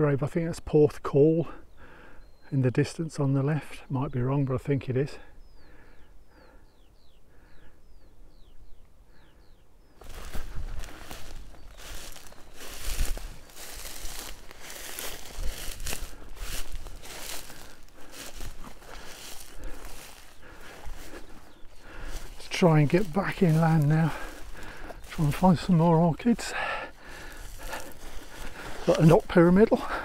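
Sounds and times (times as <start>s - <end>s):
footsteps through rustling grass: 10.0s - 30.0s.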